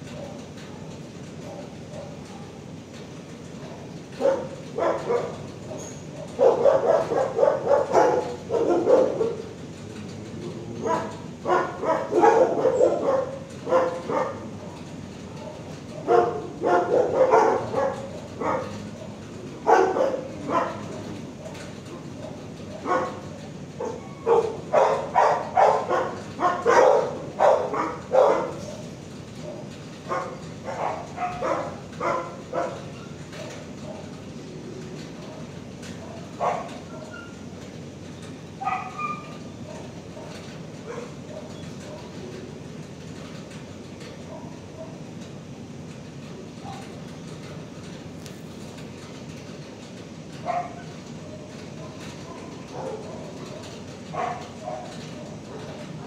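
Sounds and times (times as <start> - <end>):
dogs barking: 0.1 - 2.8, 3.5 - 34.2, 35.1 - 37.5, 38.6 - 42.4, 44.1 - 45.1, 50.4 - 56.0.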